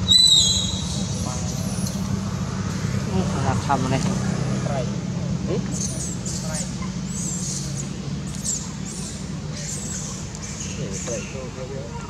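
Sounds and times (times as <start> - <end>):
baby monkey squeaky calls: 0.0 - 2.0.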